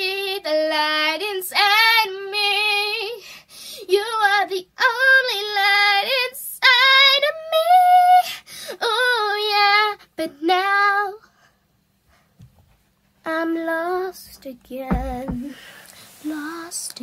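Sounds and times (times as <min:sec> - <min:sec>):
girl singing unaccompanied: 0:00.0 - 0:03.2, 0:03.8 - 0:11.2, 0:13.2 - 0:17.0.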